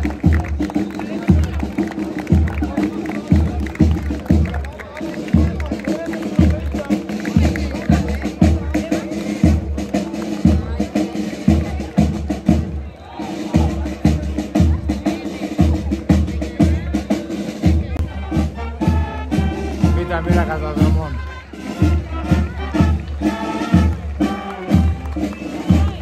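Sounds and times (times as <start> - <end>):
bass drum beats: 0.0 - 12.9, 13.5 - 26.0
brass marching band playing: 0.0 - 26.0.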